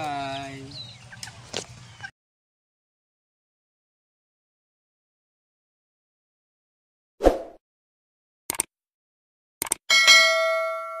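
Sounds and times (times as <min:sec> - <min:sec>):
notification bell: 0:09.9 - 0:11.0.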